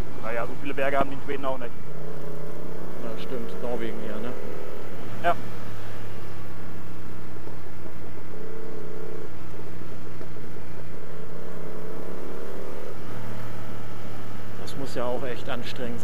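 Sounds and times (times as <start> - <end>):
motorcycle engine drone: 0.0 - 16.0.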